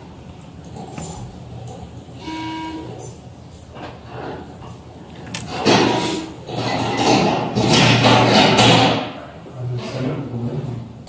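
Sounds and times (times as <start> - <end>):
heavy door clattering and scraping: 0.7 - 10.9.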